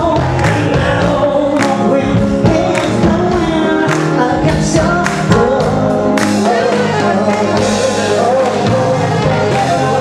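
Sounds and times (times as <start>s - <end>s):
voices singing together: 0.0s - 10.0s.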